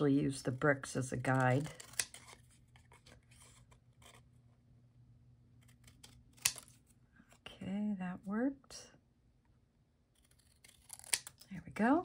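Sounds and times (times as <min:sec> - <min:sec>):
scissors cutting cardstock: 0:01.3 - 0:04.2, 0:05.6 - 0:06.8, 0:10.2 - 0:11.6.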